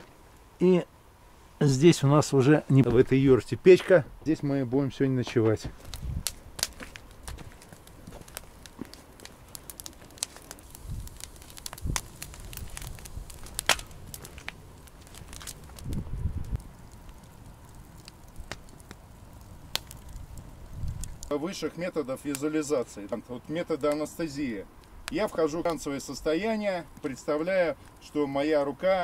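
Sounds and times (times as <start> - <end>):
wood fire crackling and popping: 0.0 - 0.9, 1.6 - 29.0.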